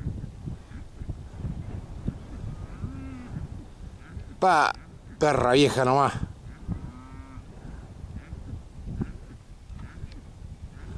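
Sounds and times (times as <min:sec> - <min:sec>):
wind rumble on microphone: 0:00.0 - 0:10.9
cattle mooing: 0:02.5 - 0:03.4, 0:06.8 - 0:07.5.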